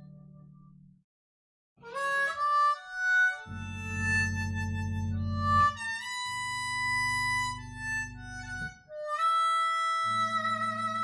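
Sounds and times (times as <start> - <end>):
harmonica slow melody: 1.8 - 11.0
electric bass long low notes: 3.4 - 8.8.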